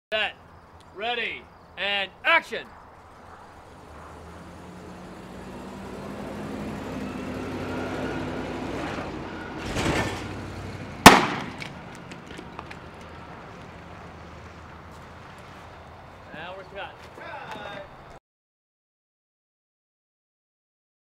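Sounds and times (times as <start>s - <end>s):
motorhome engine driving past: 2.6s - 18.2s
loud sharp bang: 11.0s - 11.7s.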